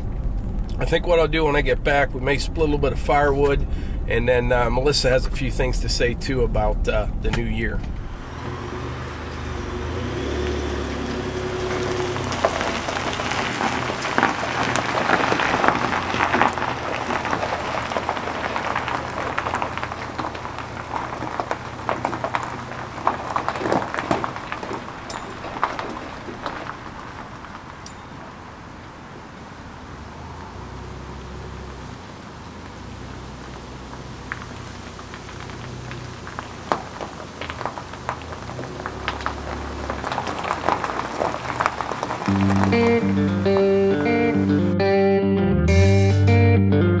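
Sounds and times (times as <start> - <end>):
low engine hum: 0.0 - 46.4
tyres crunching on gravel: 7.4 - 44.6.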